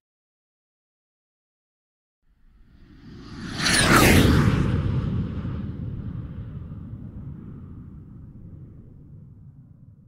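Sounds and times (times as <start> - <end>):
rocket launch rumble: 2.6 - 10.0.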